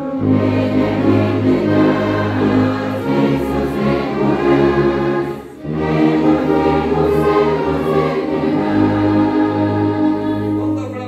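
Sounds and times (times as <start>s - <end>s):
brass orchestra playing: 0.0s - 11.0s
congregation singing a hymn: 0.0s - 11.0s.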